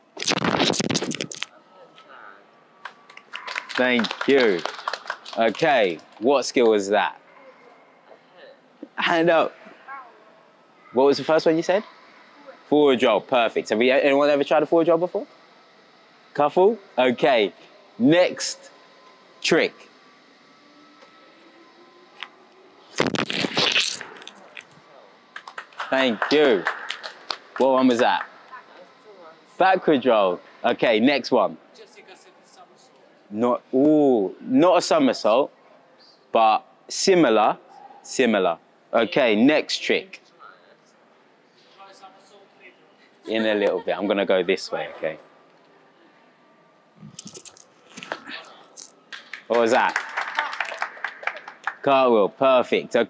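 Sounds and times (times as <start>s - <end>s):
people clapping: 2.8s - 6.8s, 24.2s - 28.8s, 48.0s - 52.0s.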